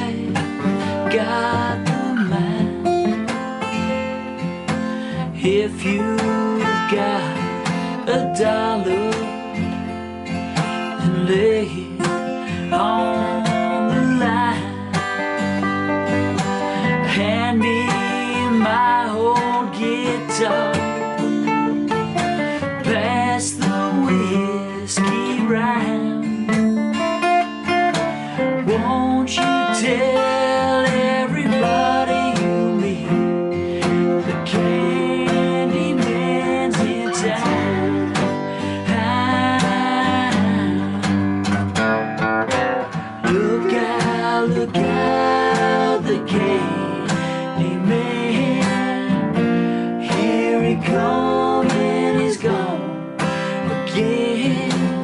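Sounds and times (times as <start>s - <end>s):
man singing: 0.0s - 3.3s, 4.8s - 9.8s, 10.6s - 26.5s, 27.9s - 41.6s, 42.8s - 55.0s
acoustic guitars playing: 0.0s - 55.0s.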